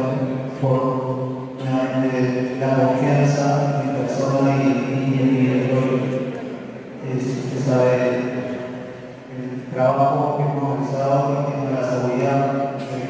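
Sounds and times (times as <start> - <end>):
man chanting into a microphone: 0.0 - 6.4, 7.0 - 13.0.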